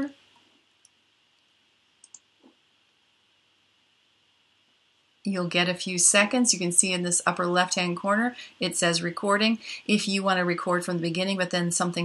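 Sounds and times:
computer mouse click: 2.0s - 2.6s.

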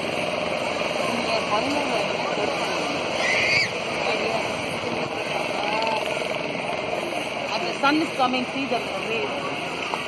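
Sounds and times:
faint people talking: 0.0s - 10.0s
steady rushing noise: 0.0s - 10.0s.

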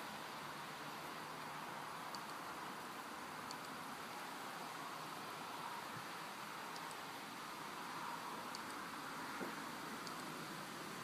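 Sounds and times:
faint background hiss: 0.0s - 11.0s
faint ticks: 2.1s - 2.5s, 3.4s - 3.8s, 6.6s - 7.0s, 8.2s - 8.8s, 9.4s - 10.4s.

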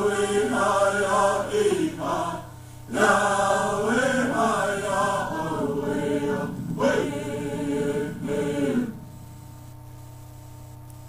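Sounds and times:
voices singing a chant: 0.0s - 9.1s.

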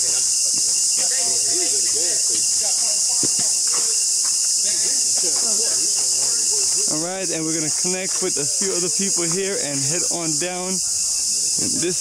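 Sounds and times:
forest insect chorus drone: 0.0s - 12.0s
faint voices: 0.8s - 12.0s.

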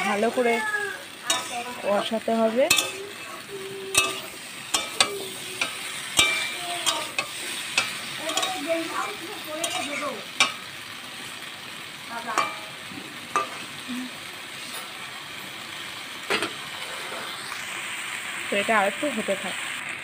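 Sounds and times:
metal spatula scraping pan: 0.0s - 10.7s, 12.2s - 13.8s, 16.3s - 17.4s
vegetables sizzling in oil: 0.0s - 20.0s.

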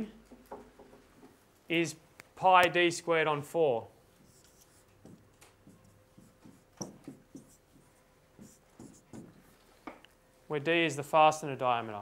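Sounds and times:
marker writing on whiteboard: 4.1s - 9.6s.

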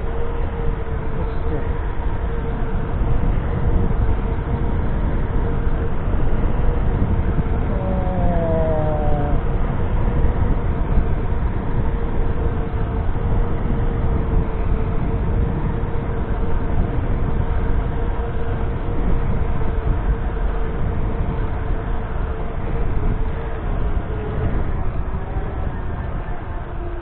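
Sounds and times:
wind and road rumble: 0.0s - 27.0s
electric motor whine: 7.4s - 9.8s.

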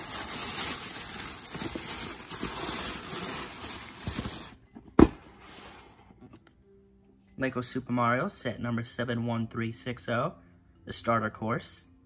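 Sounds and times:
plastic bag rustling: 0.0s - 4.6s.

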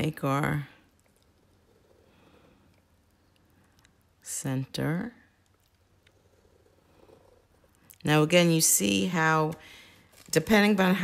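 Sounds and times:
pen drawing on paper: 6.1s - 8.2s.

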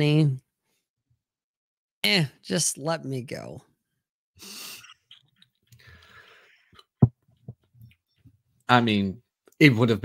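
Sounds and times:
faint breath: 5.8s - 6.9s.

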